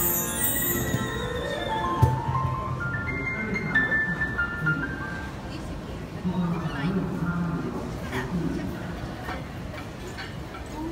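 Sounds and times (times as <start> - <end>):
sharp percussion hit: 0.0 - 2.8
violin melody: 0.0 - 3.6
electronic keyboard: 0.0 - 5.3.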